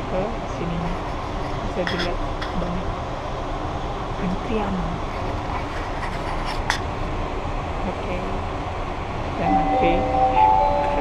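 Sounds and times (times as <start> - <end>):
subway platform rumble and hiss: 0.0 - 11.0.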